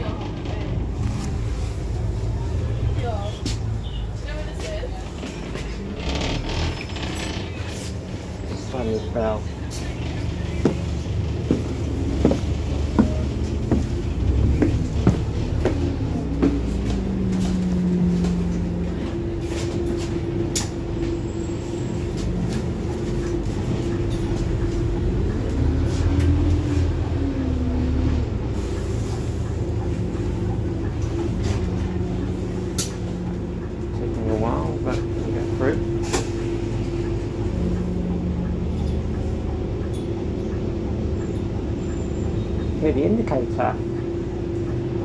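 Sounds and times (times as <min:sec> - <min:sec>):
bus engine hum with whine: 0:00.0 - 0:45.0
footsteps on stairs: 0:10.6 - 0:18.5.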